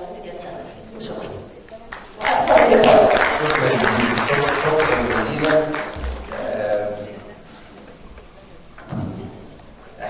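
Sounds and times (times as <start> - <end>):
voices over clapping: 1.6 - 6.8
audience applauding: 1.9 - 7.2.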